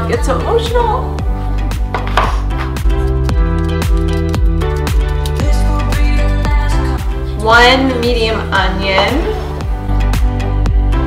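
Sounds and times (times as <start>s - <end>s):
upbeat background music: 0.0s - 11.0s.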